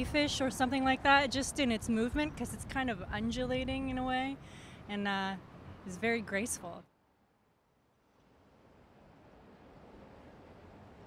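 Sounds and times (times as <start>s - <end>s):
city street traffic hiss: 0.0s - 11.0s.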